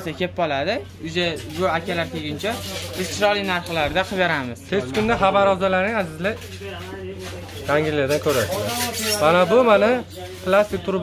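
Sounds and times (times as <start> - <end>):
man talking: 0.0 - 7.0.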